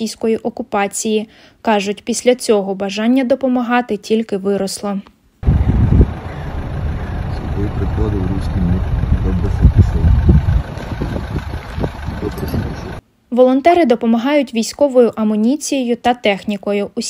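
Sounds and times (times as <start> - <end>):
car interior rumble: 5.4 - 13.0.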